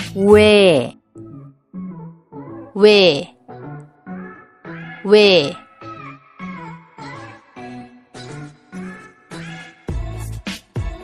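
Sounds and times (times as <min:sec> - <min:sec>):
light background music: 0:00.0 - 0:11.0
person pronouncing a vowel: 0:00.2 - 0:00.9, 0:02.8 - 0:03.3, 0:05.0 - 0:05.6.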